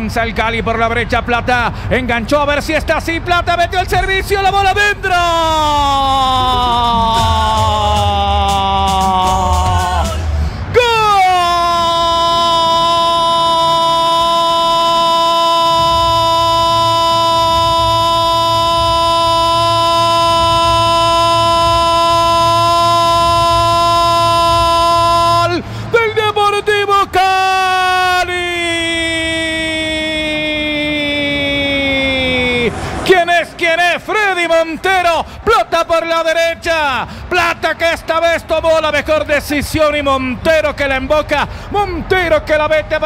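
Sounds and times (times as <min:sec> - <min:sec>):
commentator shouting goal: 0:00.0 - 0:43.0
broken shouts: 0:04.5 - 0:34.4.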